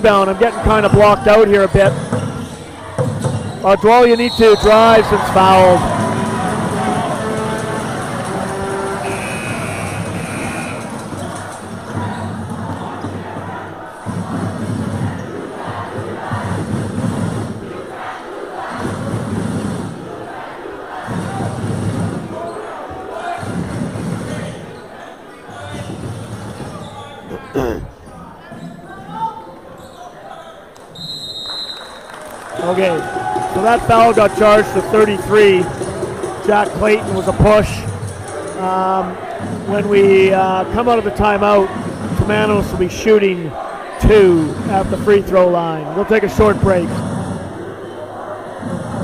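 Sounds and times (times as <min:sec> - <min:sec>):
crowd noise: 0:00.0 - 0:49.0
short high whistle-like tones: 0:09.0 - 0:10.9, 0:31.0 - 0:32.0.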